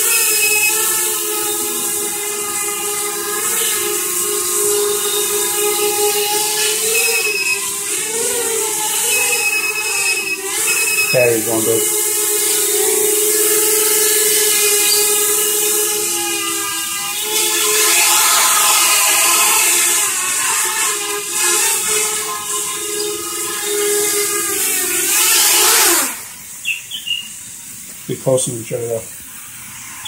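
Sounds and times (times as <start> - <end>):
quadcopter motors buzzing: 0.0 - 30.0.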